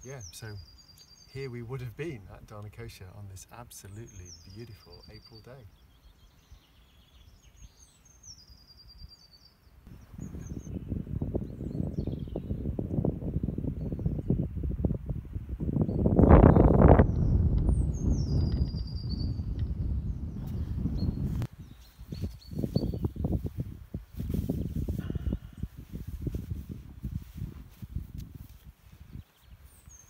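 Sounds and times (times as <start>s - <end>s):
songbird singing: 0.0s - 30.0s
wind buffeting microphone: 9.9s - 30.0s.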